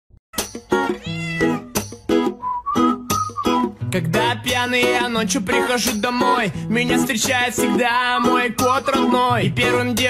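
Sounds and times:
cat meowing: 0.7s - 1.8s
hip-hop beat: 1.8s - 10.0s.

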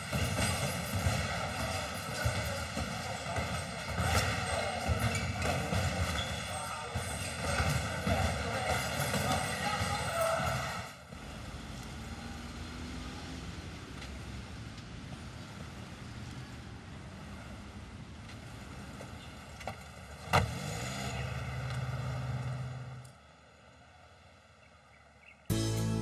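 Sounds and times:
street traffic noise: 0.0s - 26.0s.

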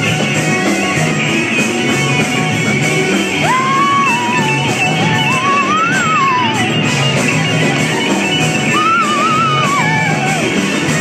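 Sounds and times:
live gospel band music: 0.0s - 11.0s
sliding lead melody: 0.0s - 11.0s.

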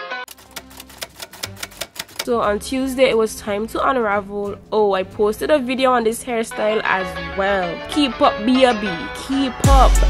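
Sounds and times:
typewriter keys clacking: 0.3s - 2.3s.

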